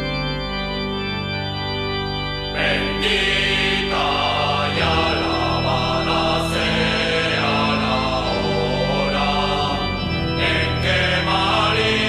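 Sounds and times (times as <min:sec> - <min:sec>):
sustained instrumental chord: 0:00.0 - 0:12.0
voices singing folk song: 0:02.6 - 0:12.0.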